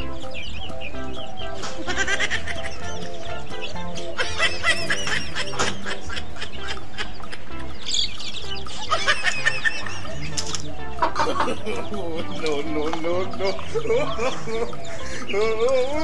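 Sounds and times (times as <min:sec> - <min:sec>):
background music: 0:00.0 - 0:16.0
hen clucking: 0:00.0 - 0:16.0.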